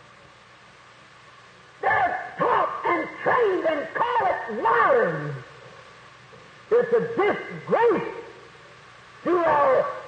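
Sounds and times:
old recording hiss: 0:00.0 - 0:10.0
man preaching: 0:01.8 - 0:05.5, 0:06.7 - 0:08.4, 0:09.2 - 0:10.0.

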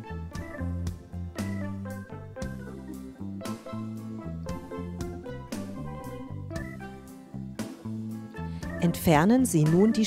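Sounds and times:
instrumental music with bass and beat: 0:00.0 - 0:08.9.

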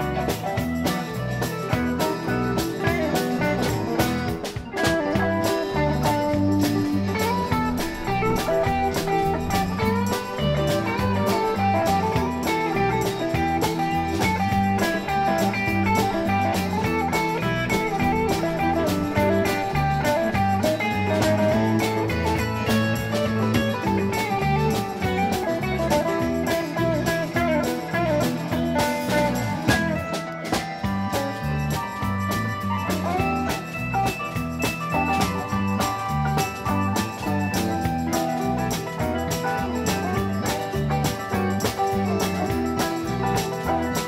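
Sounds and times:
rock band playing: 0:00.0 - 0:44.0.

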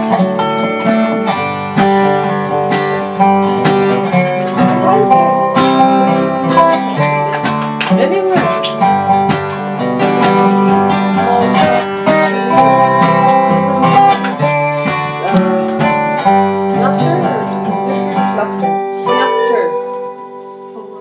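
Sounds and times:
acoustic guitar strumming: 0:00.0 - 0:21.0
slide steel guitar: 0:00.0 - 0:21.0.

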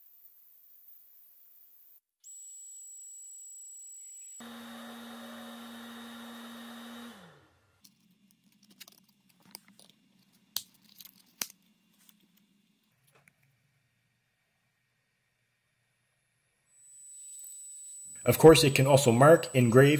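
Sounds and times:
laser engraver high whine: 0:02.3 - 0:07.3, 0:16.7 - 0:19.9
machine hum winding down: 0:04.2 - 0:07.7, 0:17.9 - 0:19.9
acrylic pieces clicking and tapping: 0:07.8 - 0:11.7.

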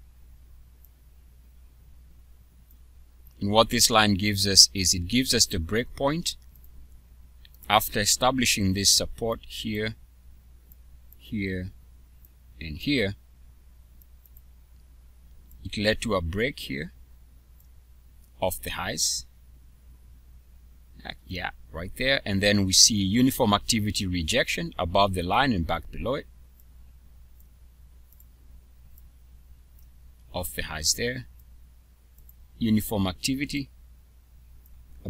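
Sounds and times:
low electrical hum: 0:00.0 - 0:35.0
person speaking: 0:03.3 - 0:06.8, 0:07.4 - 0:10.0, 0:11.1 - 0:13.2, 0:15.4 - 0:17.0, 0:18.3 - 0:19.4, 0:20.9 - 0:27.5, 0:29.8 - 0:31.4, 0:32.2 - 0:33.8
computer mouse clicks: 0:06.4 - 0:07.7, 0:14.0 - 0:15.6, 0:27.3 - 0:29.1, 0:32.1 - 0:32.4.

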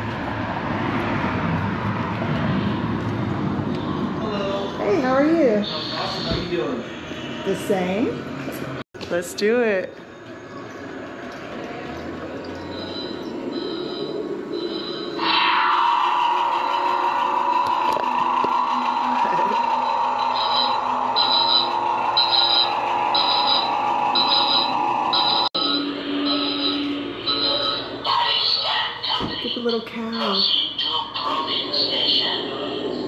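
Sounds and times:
electronic drone: 0:00.0 - 0:08.8, 0:10.1 - 0:33.0
high alarm beeps: 0:05.4 - 0:06.6, 0:12.6 - 0:15.8, 0:19.3 - 0:28.6.

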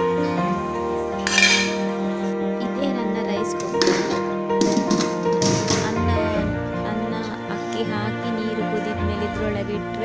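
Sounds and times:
background music: 0:00.0 - 0:10.0
steel cookware clinking: 0:01.2 - 0:02.0.

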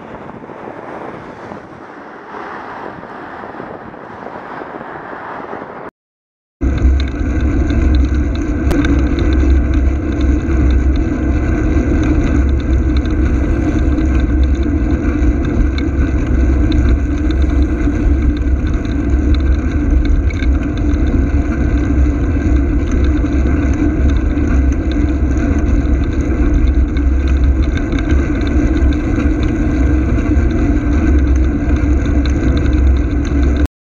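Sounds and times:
road and vehicle noise: 0:00.0 - 0:05.9, 0:06.6 - 0:33.7
wind on microphone: 0:00.0 - 0:05.9, 0:06.6 - 0:33.7.

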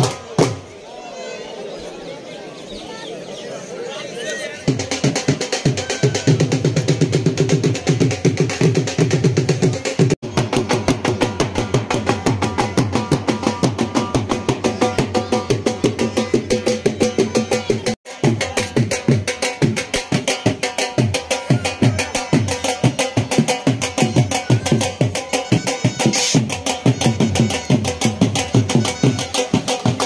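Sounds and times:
drums beaten fast: 0:00.0 - 0:00.7, 0:04.6 - 0:30.0.

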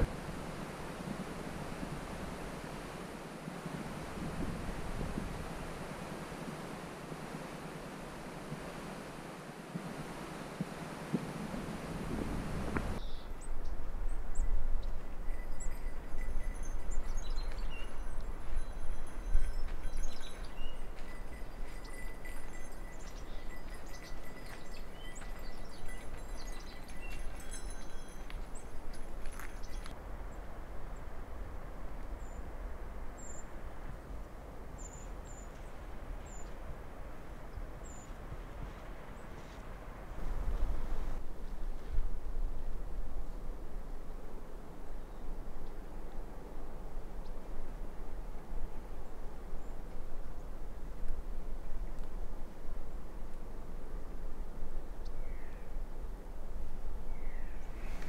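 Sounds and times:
wind rumble on microphone: 0:00.0 - 0:58.0
faint high chirps and ticks: 0:14.4 - 0:30.0.

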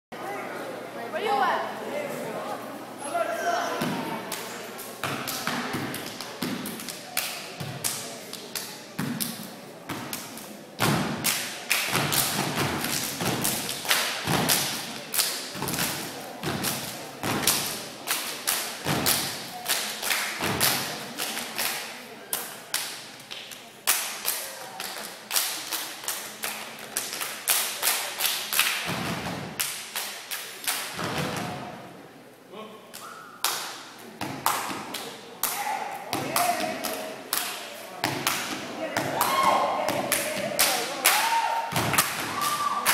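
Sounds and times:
rhythmic stomps and body percussion: 0:09.0 - 0:19.7, 0:28.9 - 0:30.1, 0:41.7 - 0:42.6.

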